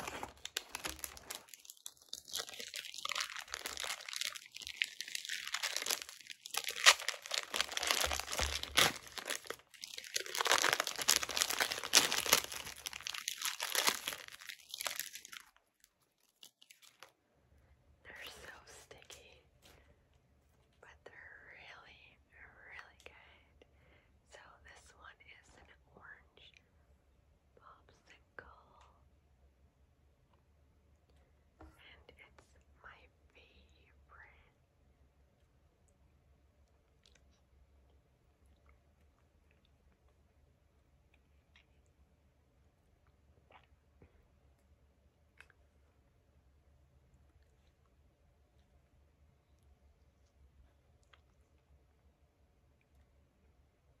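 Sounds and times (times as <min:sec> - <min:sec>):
paper wrapper crinkling and tearing: 0:00.0 - 0:15.6, 0:16.2 - 0:17.1.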